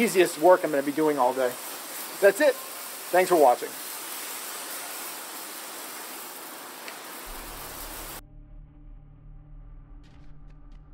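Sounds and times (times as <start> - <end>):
garden hose spraying water: 0.0 - 8.2.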